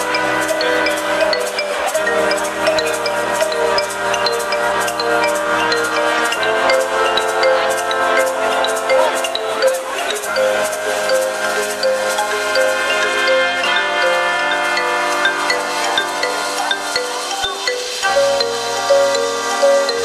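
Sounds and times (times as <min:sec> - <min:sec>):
horns and sousaphone chords: 0:00.0 - 0:20.0
steady drum beat: 0:00.0 - 0:20.0.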